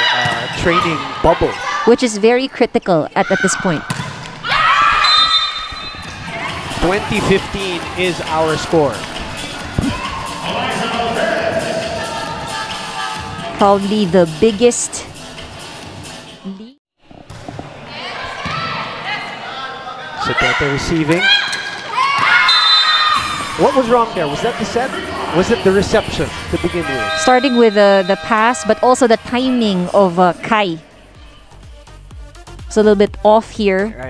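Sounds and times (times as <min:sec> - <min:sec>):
volleyball thudding: 0:03.8 - 0:06.7, 0:22.1 - 0:22.4
ball thudding: 0:03.9 - 0:04.4
players shouting: 0:04.4 - 0:13.5, 0:20.1 - 0:30.5.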